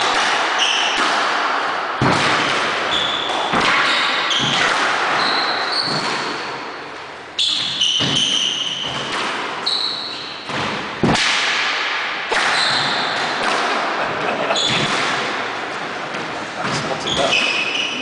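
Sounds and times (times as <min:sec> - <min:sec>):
squash ball cracking off rackets and walls: 0:00.0 - 0:17.9
shoes squeaking on wooden floor: 0:07.4 - 0:10.5, 0:16.1 - 0:18.0.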